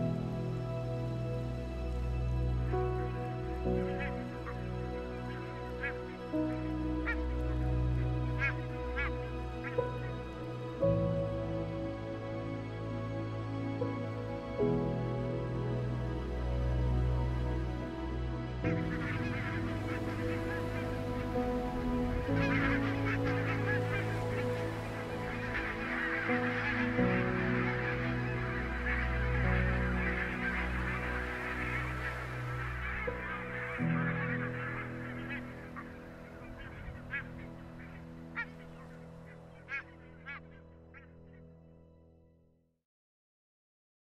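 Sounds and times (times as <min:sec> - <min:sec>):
geese calling: 0:00.0 - 0:12.2, 0:16.1 - 0:41.4
soft background music: 0:00.0 - 0:42.4.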